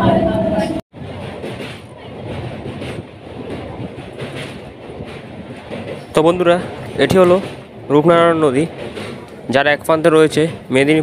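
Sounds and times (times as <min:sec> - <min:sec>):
train wheels on rails: 0:00.0 - 0:11.0.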